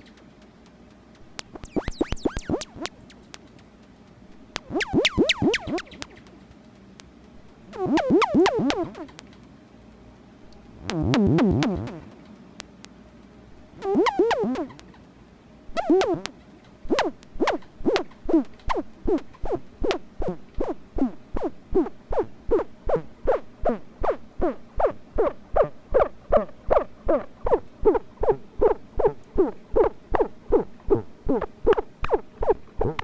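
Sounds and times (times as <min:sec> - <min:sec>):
synthesizer blips: 0:01.4 - 0:03.4, 0:04.6 - 0:06.4, 0:07.7 - 0:09.3, 0:10.7 - 0:12.2, 0:13.7 - 0:14.9, 0:15.7 - 0:33.0.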